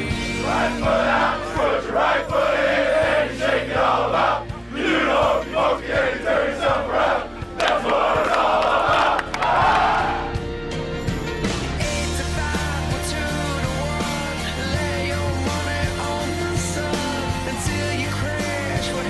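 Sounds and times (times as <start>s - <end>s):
players shouting and cheering: 0.0s - 10.4s
rock music: 0.0s - 19.0s.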